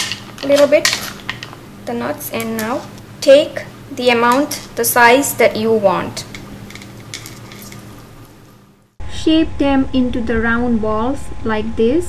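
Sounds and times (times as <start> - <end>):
hands mixing sticky sweets: 0.0 - 8.4.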